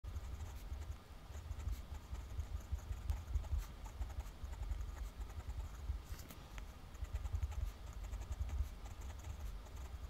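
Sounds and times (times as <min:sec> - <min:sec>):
pen nib scratching paper: 0:00.1 - 0:06.3, 0:06.9 - 0:10.0.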